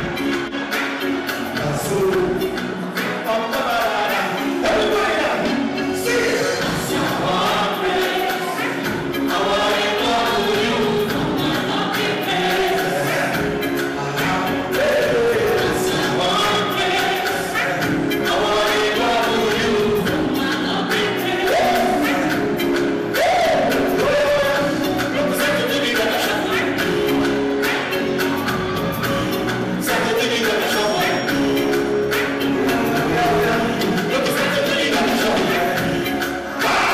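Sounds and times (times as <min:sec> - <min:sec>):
loud backing track: 0:00.0 - 0:36.9
man singing into microphone: 0:01.5 - 0:27.2, 0:29.8 - 0:31.9, 0:32.5 - 0:36.9.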